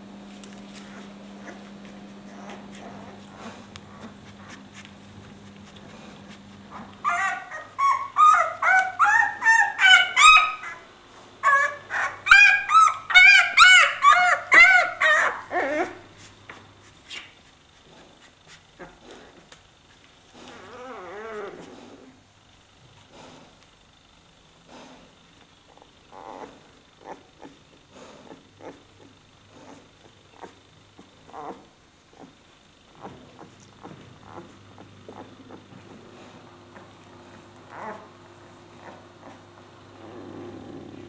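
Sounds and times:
puppy grunting: 0:00.8 - 0:10.8, 0:11.4 - 0:16.1, 0:20.3 - 0:22.2, 0:24.6 - 0:41.0
puppy crying high-pitched squeals: 0:07.0 - 0:10.8, 0:11.4 - 0:16.0.

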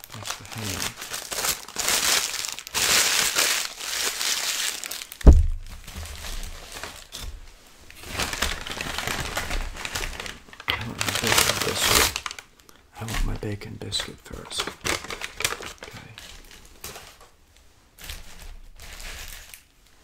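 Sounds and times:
paper wrapper crinkling: 0:00.0 - 0:17.4, 0:18.0 - 0:19.7
sharp thump: 0:05.2 - 0:06.1.

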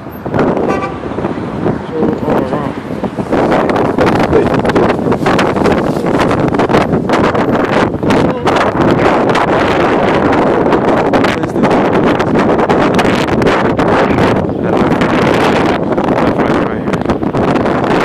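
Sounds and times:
wind noise on microphone: 0:00.0 - 0:18.0.

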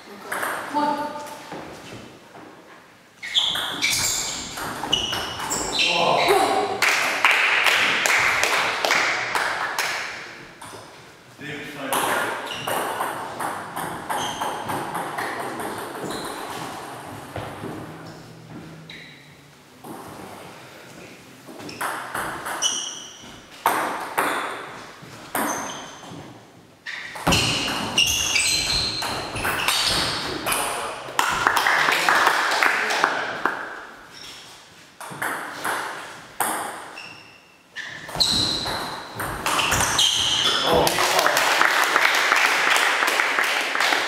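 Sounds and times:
table tennis ball bouncing: 0:00.3 - 0:00.7, 0:03.4 - 0:05.8, 0:11.9 - 0:19.2, 0:21.6 - 0:25.7, 0:27.1 - 0:31.7, 0:35.0 - 0:37.0, 0:38.1 - 0:40.5
table tennis ball knocking: 0:11.9 - 0:19.0.

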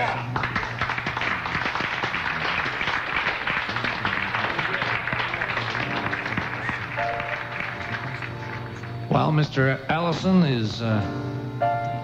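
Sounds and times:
audience applauding: 0:00.0 - 0:09.1.

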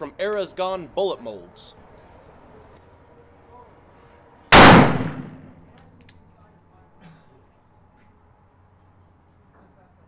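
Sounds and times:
revolver gunshot: 0:04.5 - 0:05.6.

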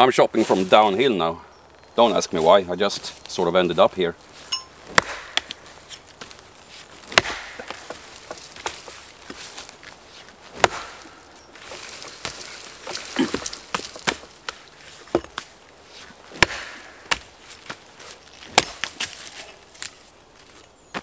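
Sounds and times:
axe chopping log: 0:04.8 - 0:05.6, 0:07.0 - 0:09.4, 0:10.5 - 0:11.2, 0:12.0 - 0:15.5, 0:16.3 - 0:17.8, 0:18.5 - 0:19.2
wood splintering and cracking: 0:04.9 - 0:15.5, 0:18.2 - 0:20.0.

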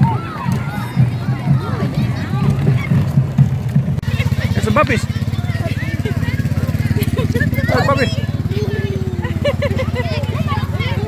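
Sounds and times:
crowd voices: 0:00.0 - 0:11.0
vehicle engine idling: 0:00.0 - 0:11.0.

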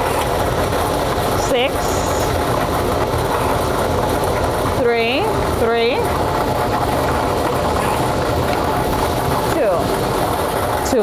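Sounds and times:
lottery ball machine mixing balls: 0:00.0 - 0:11.0.

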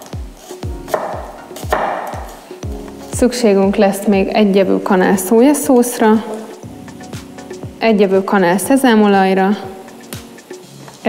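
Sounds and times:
knife slicing onion on wooden board: 0:00.0 - 0:03.1
background music with steady beat: 0:00.0 - 0:11.0.

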